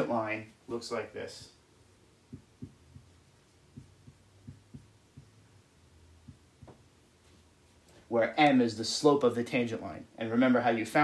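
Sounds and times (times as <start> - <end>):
steady low hum: 0.0 - 10.2
marker tapping on whiteboard: 2.3 - 5.4, 6.2 - 6.9.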